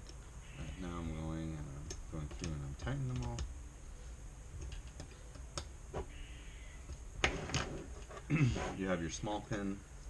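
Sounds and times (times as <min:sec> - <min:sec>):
small clicks and taps on desk: 0:01.8 - 0:03.5.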